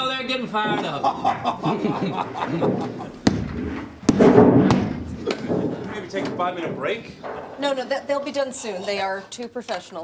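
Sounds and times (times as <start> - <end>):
studio audience laughing: 0.7 - 3.2
sharp bangs inside air duct: 2.7 - 7.6.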